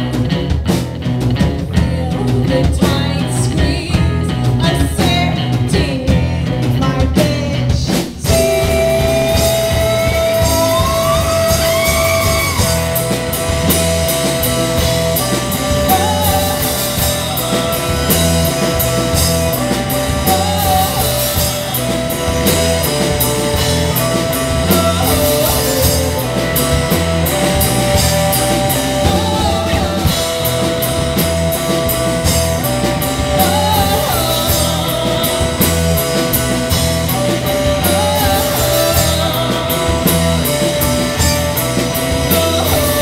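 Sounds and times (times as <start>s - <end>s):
drum kit beat: 0.0s - 43.0s
electric bass: 0.0s - 43.0s
electric guitars: 0.0s - 43.0s.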